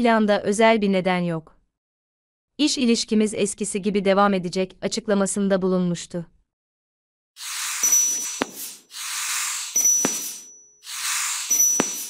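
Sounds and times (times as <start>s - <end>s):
hissing whooshes: 7.4s - 12.0s
thin high ping: 7.4s - 12.0s.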